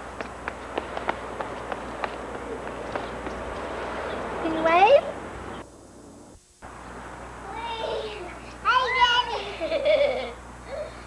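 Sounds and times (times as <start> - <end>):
outdoor background noise: 0.0 - 11.0
tape hiss and hum: 0.0 - 11.0.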